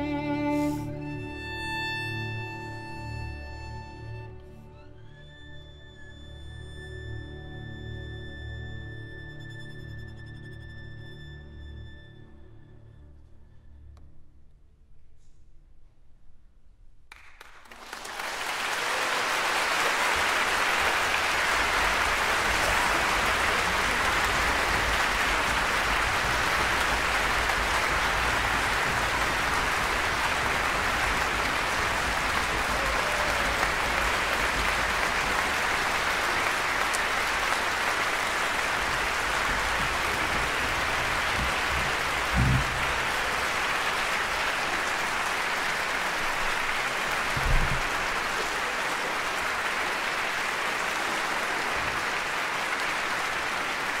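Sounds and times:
audience applauding: 0:17.1 - 0:54.0.

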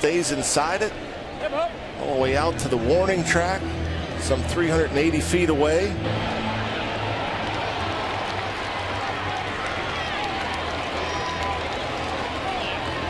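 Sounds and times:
ballpark crowd din: 0:00.0 - 0:13.0.

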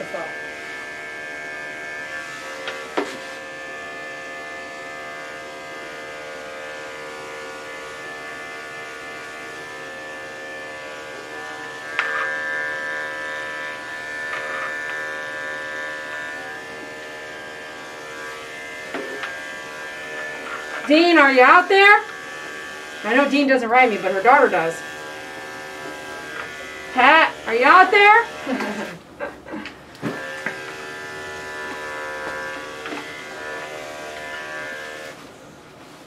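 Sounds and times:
electric clippers humming: 0:00.0 - 0:35.2.

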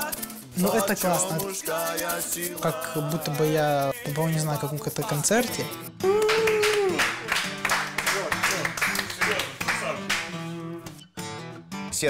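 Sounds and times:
acoustic guitar strumming: 0:00.0 - 0:12.0
voices: 0:00.6 - 0:05.5.

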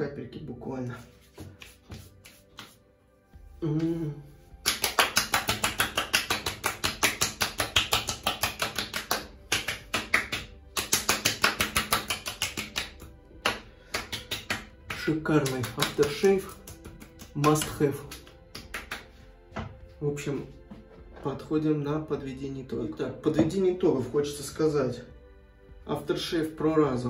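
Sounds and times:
palms slapping face: 0:01.2 - 0:02.9, 0:03.6 - 0:19.9
person humming: 0:03.6 - 0:04.4.

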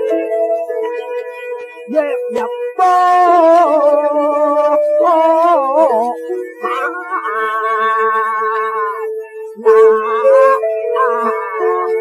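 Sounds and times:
man singing opera: 0:01.9 - 0:12.0.

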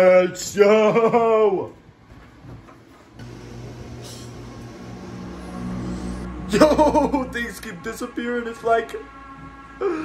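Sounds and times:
kitchen appliance humming: 0:03.2 - 0:06.3.

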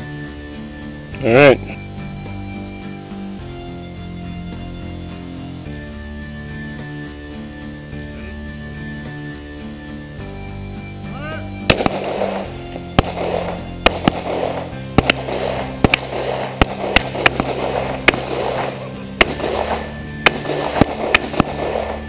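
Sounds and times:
background music: 0:00.0 - 0:22.0
handgun shots with echo: 0:11.7 - 0:22.0.

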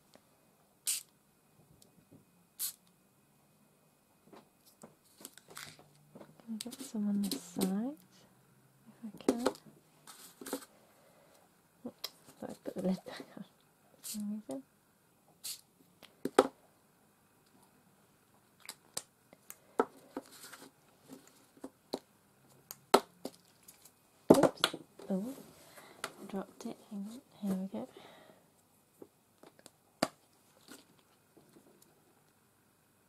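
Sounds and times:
art supplies clicking and rustling: 0:04.6 - 0:07.8.

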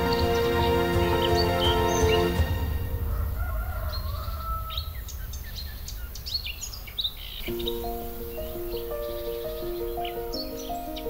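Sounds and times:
gentle instrumental music: 0:00.0 - 0:03.4, 0:07.4 - 0:11.0
small birds chirping: 0:03.9 - 0:11.0.

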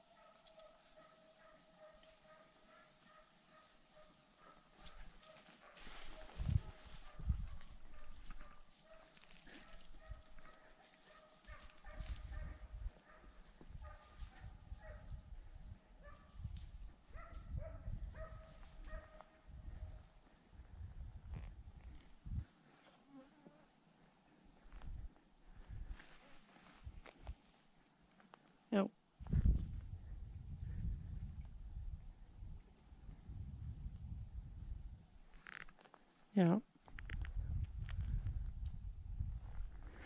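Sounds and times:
distant dog barking: 0:00.0 - 0:15.2, 0:16.0 - 0:16.4, 0:17.1 - 0:20.0
low rumble on microphone: 0:29.2 - 0:35.3, 0:37.0 - 0:40.0.

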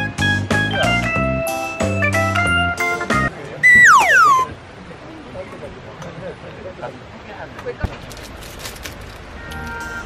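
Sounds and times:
high whistle sliding down: 0:03.6 - 0:04.5.

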